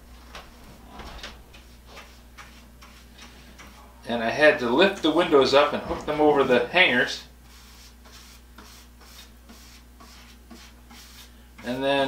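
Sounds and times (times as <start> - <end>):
low room hum: 0.0 - 12.0
paintbrush strokes on wood: 0.4 - 3.9, 7.4 - 12.0.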